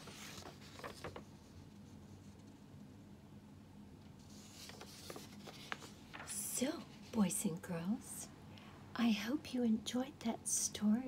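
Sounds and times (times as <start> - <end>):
paper rustling: 0.0 - 2.6, 4.2 - 7.2
woman speaking softly: 6.3 - 11.0.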